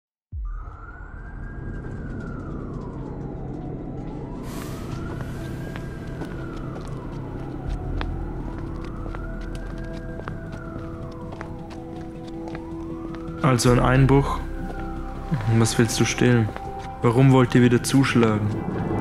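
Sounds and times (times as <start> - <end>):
low rumbling music: 0.4 - 19.0
siren wailing: 0.4 - 19.0.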